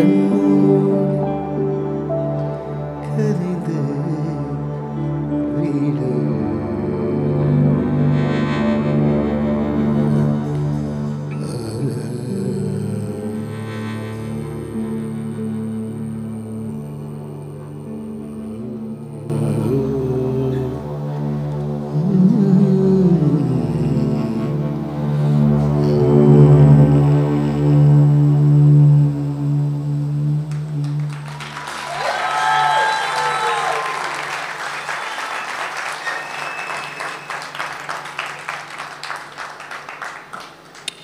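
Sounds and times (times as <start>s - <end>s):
sliding vocal line: 0.0s - 8.1s, 9.8s - 34.2s
sustained low drone: 0.0s - 31.8s
audience applauding: 30.5s - 41.0s
audience cheering: 30.8s - 41.0s.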